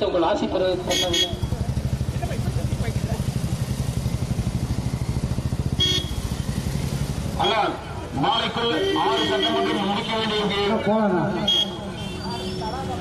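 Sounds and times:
vehicle engine idling: 0.5s - 10.8s.

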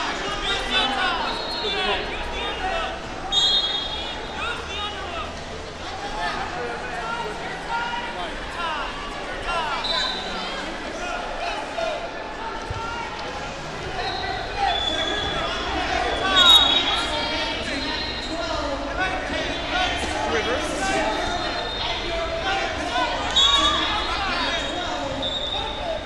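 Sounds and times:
murmur of voices: 0.0s - 26.0s
short high whistle blasts: 3.3s - 4.0s.

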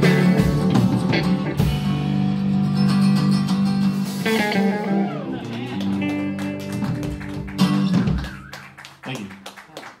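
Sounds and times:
live band playing: 0.0s - 9.5s.

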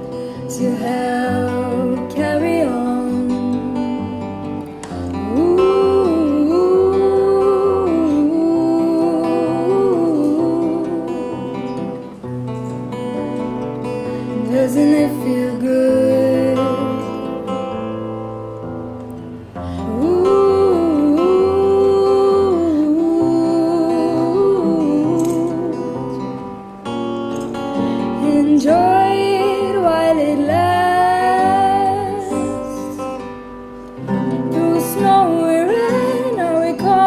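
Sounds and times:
women's wordless singing: 0.0s - 4.4s, 5.2s - 11.6s, 14.4s - 17.4s, 19.8s - 26.2s, 28.1s - 33.2s, 34.1s - 37.0s
acoustic guitars strumming: 0.0s - 37.0s.

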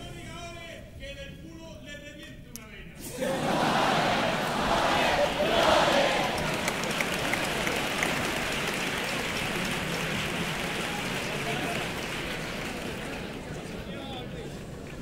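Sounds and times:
audience cheering: 3.1s - 13.9s
audience applauding: 3.2s - 15.0s.

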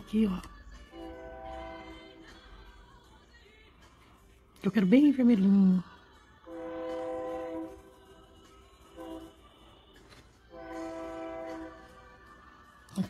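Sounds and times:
horn blasts: 0.9s - 2.3s, 6.4s - 8.0s, 8.8s - 9.6s, 10.5s - 12.1s.

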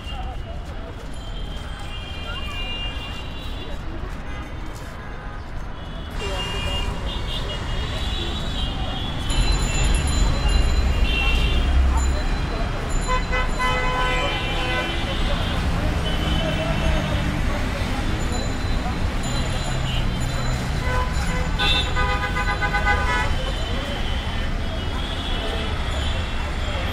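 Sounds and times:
engines rumbling in traffic: 0.0s - 26.9s
vehicle horns honking: 13.0s - 17.1s, 19.8s - 26.9s.

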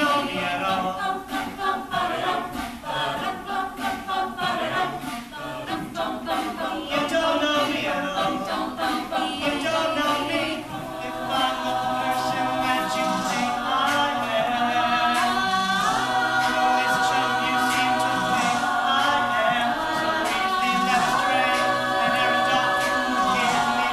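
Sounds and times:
a cappella group singing: 0.0s - 23.9s.

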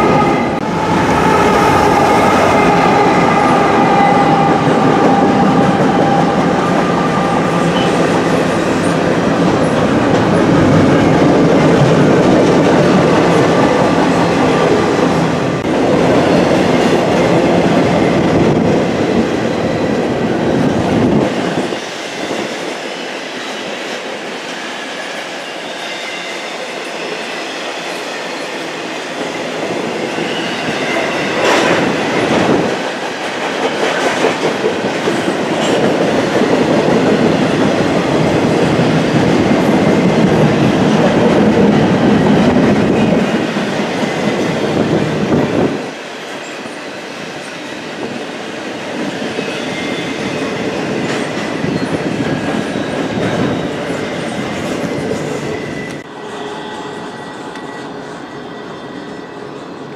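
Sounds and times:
high wheel squeal: 0.0s - 9.0s
freight train wheels rumbling: 0.0s - 59.9s.

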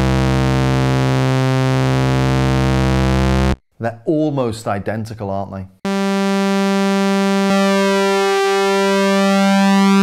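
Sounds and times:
sawtooth synth note: 5.9s - 10.0s.

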